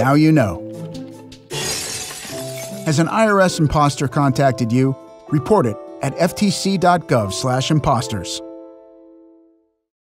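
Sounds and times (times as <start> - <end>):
soft background music: 0.0 - 9.8
glass shattering: 1.5 - 3.1.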